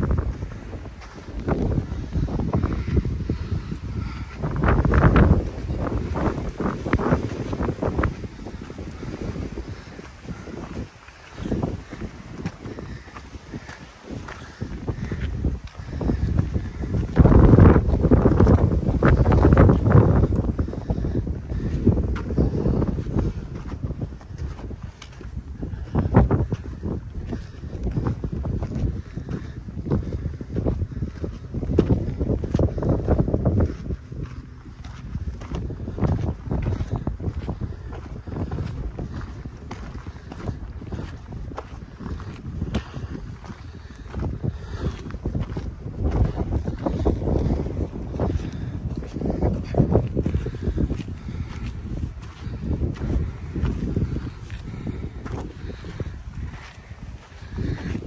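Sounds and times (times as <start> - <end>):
footsteps on gravel: 0.0 - 58.0
wind buffeting microphone: 0.0 - 58.0.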